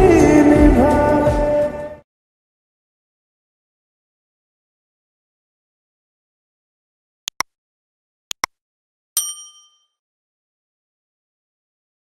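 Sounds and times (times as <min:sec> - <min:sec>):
bright bell chime: 0:09.2 - 0:10.0.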